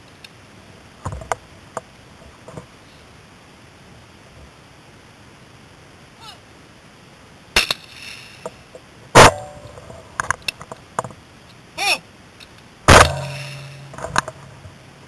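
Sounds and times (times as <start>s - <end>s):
shotgun shots: 9.2s - 9.5s, 12.9s - 14.1s.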